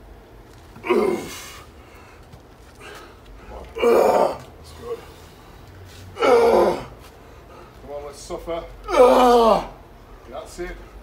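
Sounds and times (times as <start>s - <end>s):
man grunting with effort: 0.8s - 1.6s, 3.7s - 5.0s, 6.2s - 7.0s, 8.8s - 9.8s.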